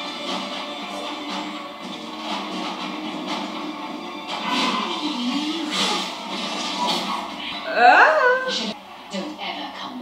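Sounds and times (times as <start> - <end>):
fight scene action noise: 0.2 - 7.6.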